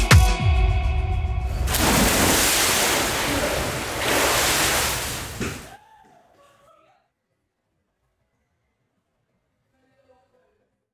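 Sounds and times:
ocean waves washing in: 1.5 - 5.7.

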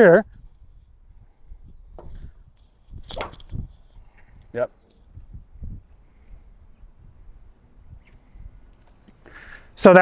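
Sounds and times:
golf club striking ball: 3.0 - 3.6.

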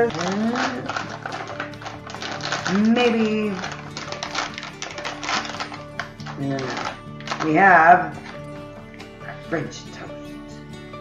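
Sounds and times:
plastic packaging crinkling: 0.0 - 8.5
background music: 0.0 - 11.0
crackly clicks: 0.1 - 7.5.

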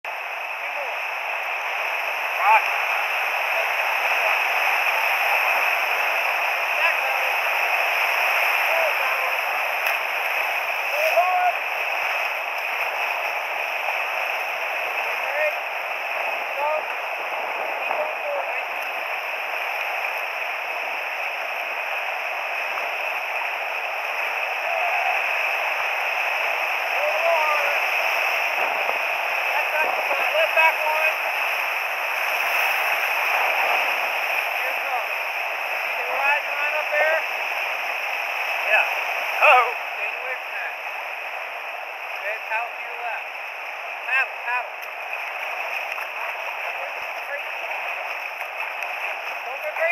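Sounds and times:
whitewater rapids rushing: 0.1 - 49.9
small water splashes: 1.6 - 39.8, 43.0 - 49.9.

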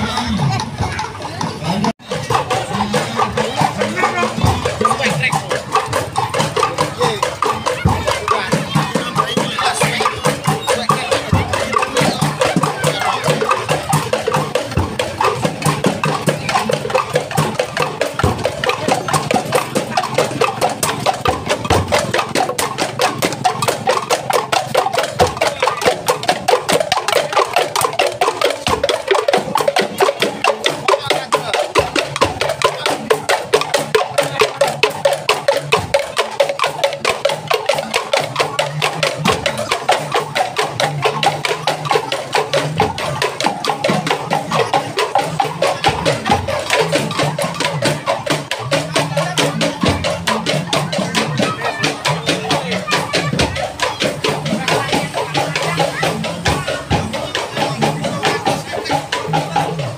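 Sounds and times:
bamboo percussion wooden knocks: 0.0 - 59.9.

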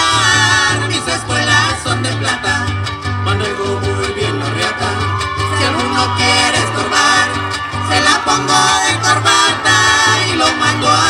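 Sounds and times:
pulsing bass: 0.0 - 11.0
strummed guitars: 0.0 - 11.0.

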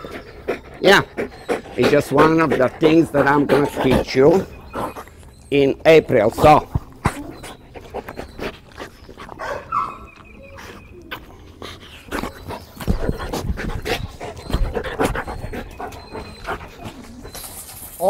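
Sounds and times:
dog panting: 0.0 - 17.9
dog scuffling: 6.6 - 18.0.

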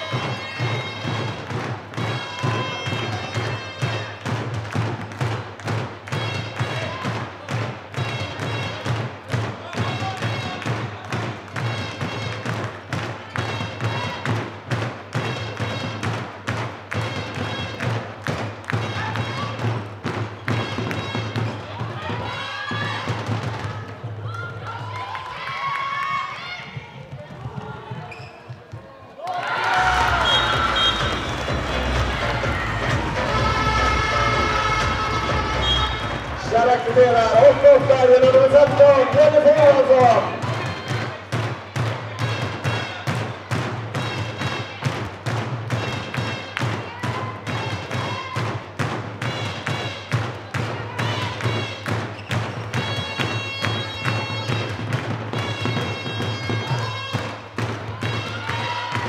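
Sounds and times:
people shouting: 0.0 - 4.3, 20.7 - 26.8, 29.2 - 45.0, 45.8 - 48.6, 56.1 - 59.0.

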